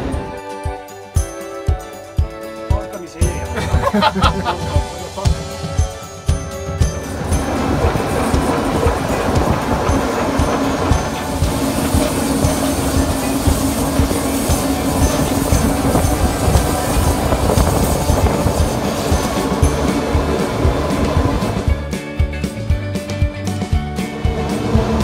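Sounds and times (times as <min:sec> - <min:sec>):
steady held tone: 0:03.2 - 0:21.9
train wheels clattering on track: 0:03.6 - 0:21.8.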